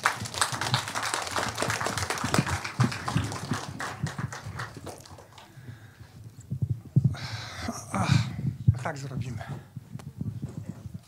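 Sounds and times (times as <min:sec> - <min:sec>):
audience applause: 0:00.0 - 0:05.6.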